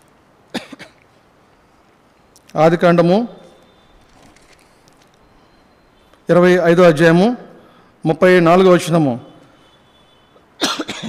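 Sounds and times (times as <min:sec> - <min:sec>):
man coughing: 0:00.5 - 0:01.0, 0:10.6 - 0:11.0.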